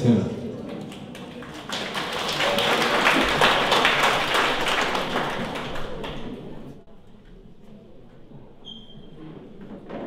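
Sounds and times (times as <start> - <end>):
audience applauding: 0.6 - 6.8.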